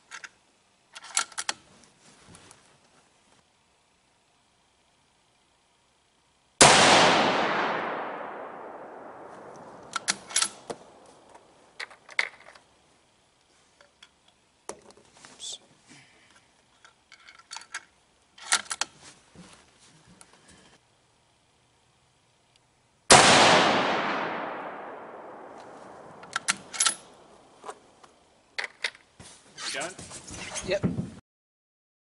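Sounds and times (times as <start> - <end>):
rifle shot echoing: 6.6 - 11.0, 23.1 - 27.3
rifle bolt clicks and clacks: 9.8 - 10.7, 26.2 - 27.1.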